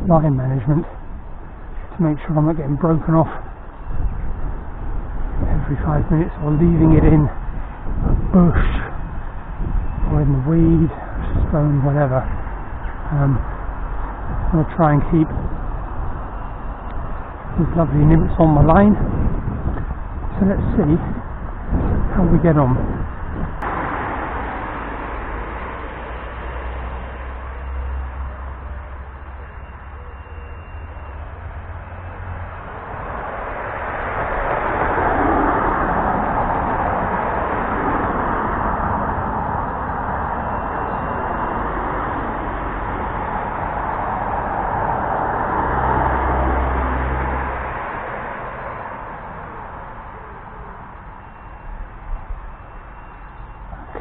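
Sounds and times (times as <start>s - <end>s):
low rumble: 0.0s - 29.6s
vehicles passing: 0.0s - 54.0s.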